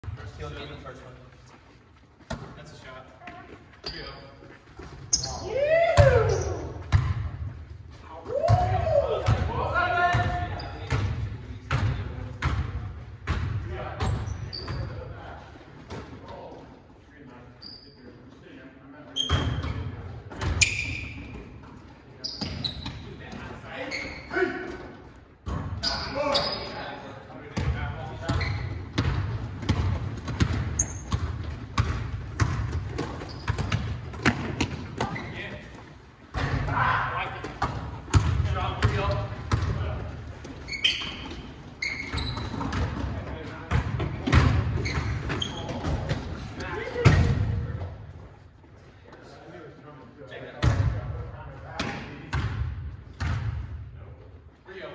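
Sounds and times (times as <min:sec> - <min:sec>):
players calling out: 0:05.1 - 0:06.9
basketball bouncing on wooden floor: 0:28.3 - 0:35.2, 0:37.5 - 0:39.8.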